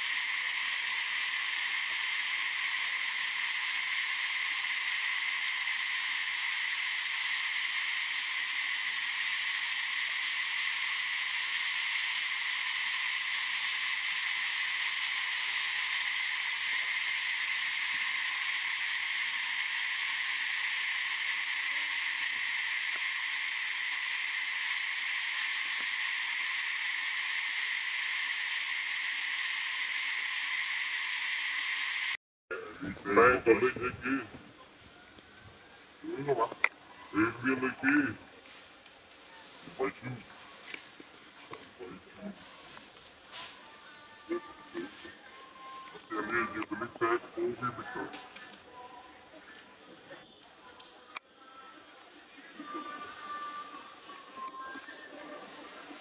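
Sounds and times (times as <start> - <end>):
insect chorus buzzing: 0.0 - 38.6, 39.2 - 50.4.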